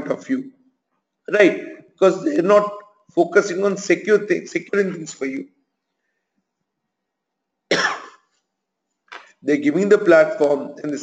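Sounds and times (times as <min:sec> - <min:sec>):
man coughing: 0:07.7 - 0:08.3.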